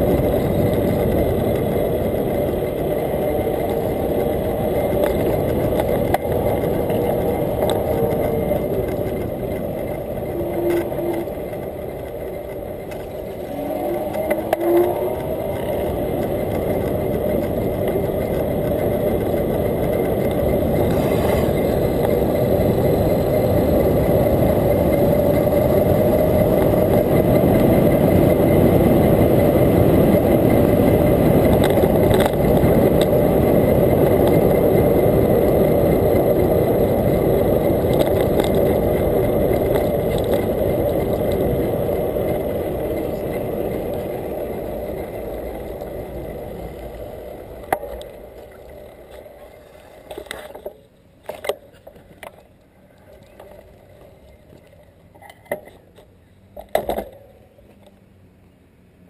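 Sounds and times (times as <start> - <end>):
wind rush on microphone: 0.0 - 50.3
bicycle tyre noise on pavement: 0.0 - 59.0.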